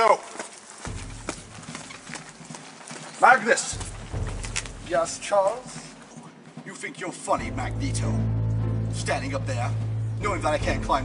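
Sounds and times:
footsteps on concrete: 0.2s - 7.5s.

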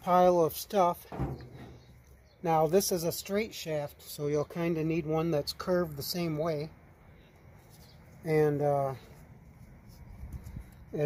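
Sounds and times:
faint handling sounds: 7.1s - 11.0s.

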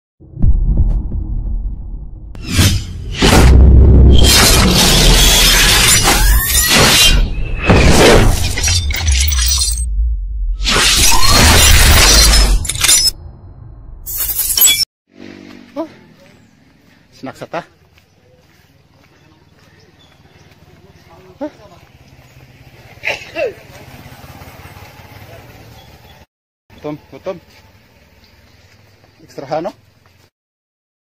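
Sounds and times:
deep bass rumble: 0.2s - 5.1s, 9.8s - 10.6s
whooshes: 0.2s - 8.6s
shattering crash: 2.5s - 9.9s, 10.6s - 13.2s.

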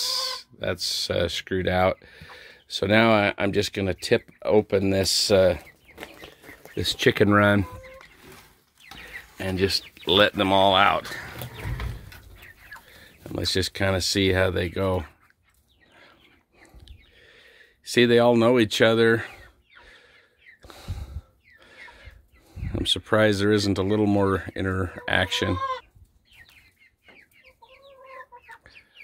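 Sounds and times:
chickens clucking: 0.0s - 29.0s.

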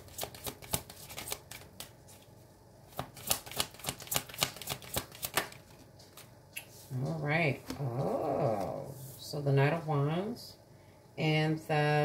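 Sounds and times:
cards being shuffled: 0.0s - 6.4s.

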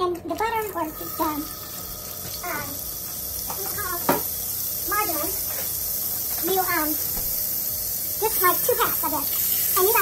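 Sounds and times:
margarine sizzling in skillet: 0.4s - 10.0s.

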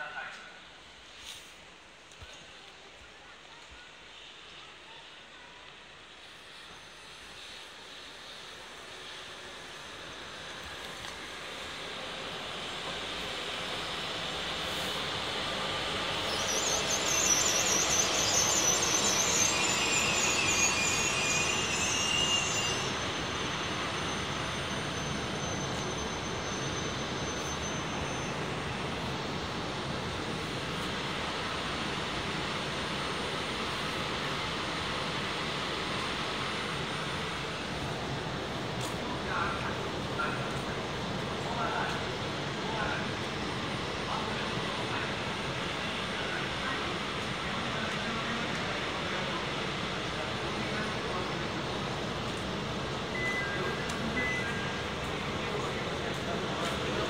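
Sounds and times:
train brakes squealing: 0.0s - 57.0s
train running noise: 0.0s - 57.0s.

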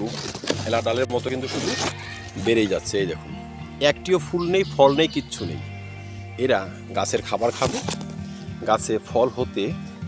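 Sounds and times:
soft background music: 0.0s - 10.0s
person speaking: 3.8s - 5.7s.

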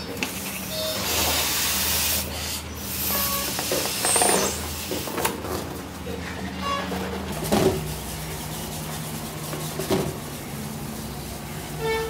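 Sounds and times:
air hissing from balloon: 0.3s - 5.2s.

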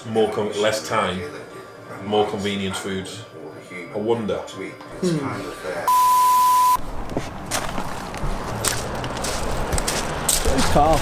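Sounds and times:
man speaking: 0.0s - 5.9s, 10.5s - 11.0s
high-pitched bleep: 5.9s - 6.8s.

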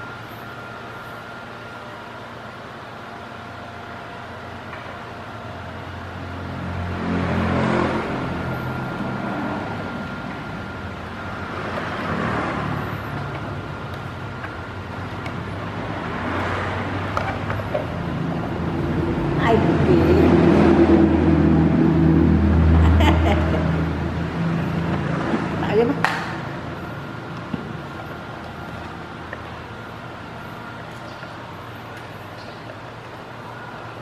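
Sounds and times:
steady low hum: 0.0s - 34.0s
vehicles passing by: 5.4s - 34.0s.

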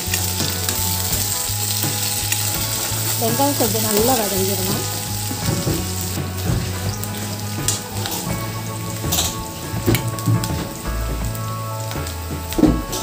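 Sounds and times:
background music: 0.0s - 13.0s
onions sizzling in hot oil: 0.0s - 13.0s.

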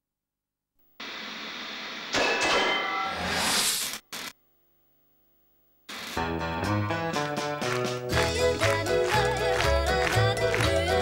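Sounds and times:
television static hiss: 0.9s - 2.1s, 3.9s - 6.2s.

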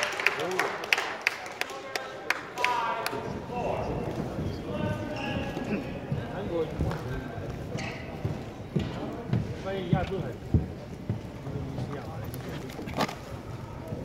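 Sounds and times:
murmur of voices: 0.0s - 14.0s
shoes squeaking on court: 4.5s - 6.2s.

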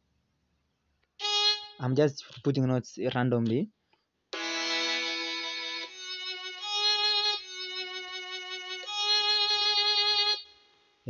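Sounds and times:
synthesized notes: 4.4s - 10.5s.

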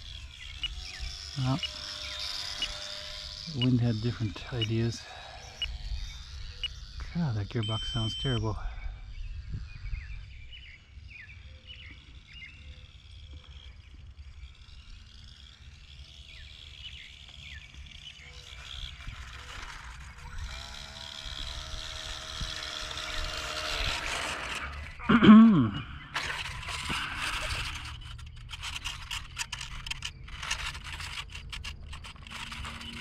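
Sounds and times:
birds chirping: 0.0s - 33.0s
faint droning hum: 0.0s - 33.0s
wind rumbling on microphone: 8.6s - 11.2s.

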